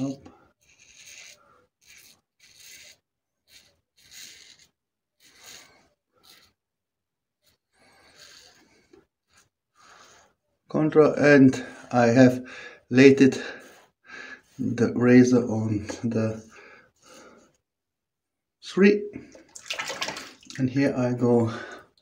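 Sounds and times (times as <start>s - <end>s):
razor scraping stubble: 0.0s - 6.7s.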